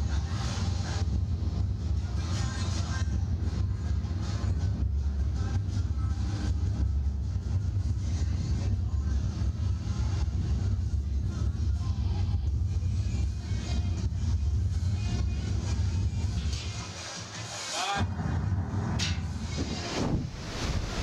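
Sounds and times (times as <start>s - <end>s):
wind rushing over microphone: 18.2s - 21.0s.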